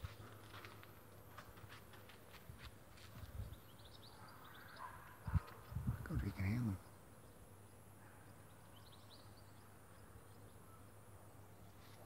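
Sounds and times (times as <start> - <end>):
faint high bird chirps: 3.2 - 12.0.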